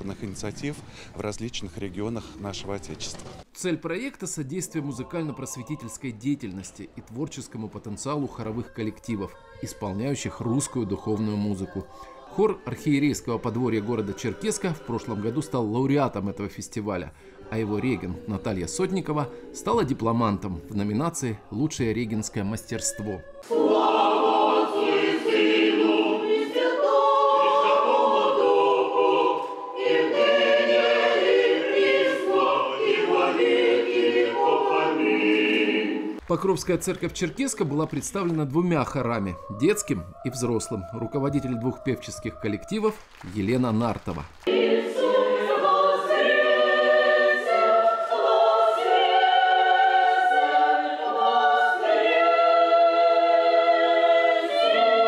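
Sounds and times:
choir singing a cappella: 7.9s - 36.2s, 38.8s - 43.0s, 44.4s - 55.0s.

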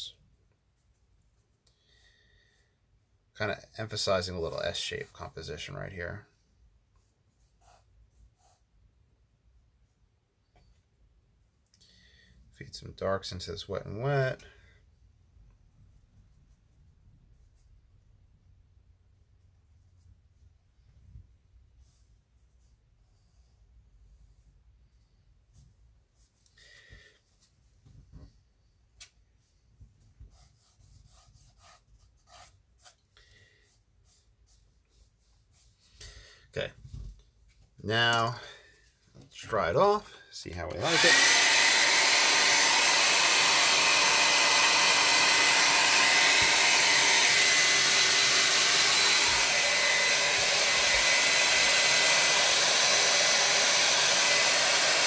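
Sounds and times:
brush stroke on paper: 6.9s - 9.0s, 21.6s - 26.4s, 29.4s - 36.0s.

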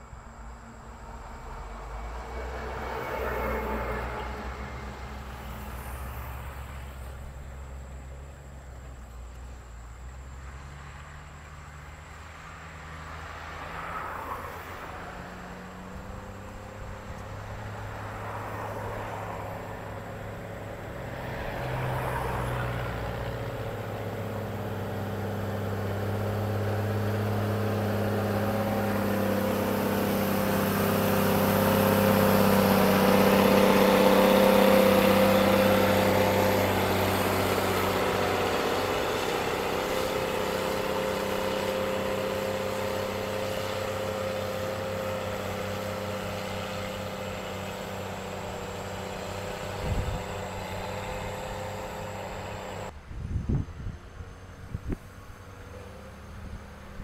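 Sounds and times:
diesel engine of grader: 0.0s - 57.0s.

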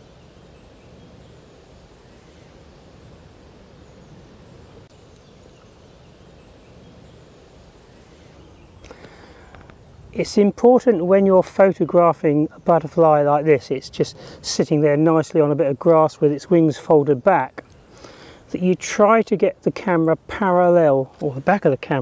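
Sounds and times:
faint clicks: 8.8s - 9.8s, 17.6s - 17.9s.

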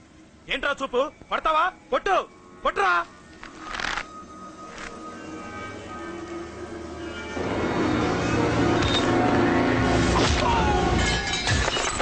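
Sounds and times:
background music with held note: 0.1s - 10.1s.

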